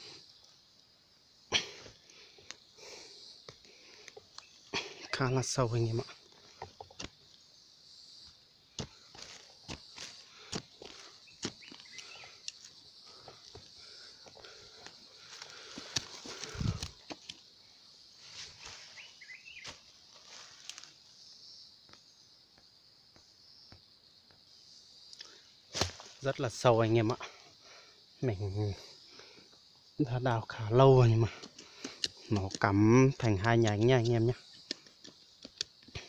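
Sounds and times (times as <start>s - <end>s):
steady high hiss: 0.0s - 36.0s
digging in loose soil: 1.5s - 7.5s, 8.1s - 17.5s, 18.1s - 21.1s, 25.2s - 27.4s, 30.0s - 36.0s.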